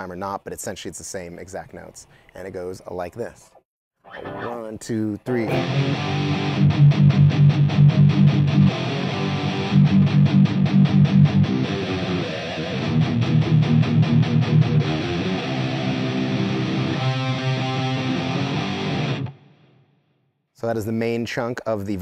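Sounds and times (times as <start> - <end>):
electric guitars playing metal riff: 4.1 - 4.7, 5.3 - 19.7.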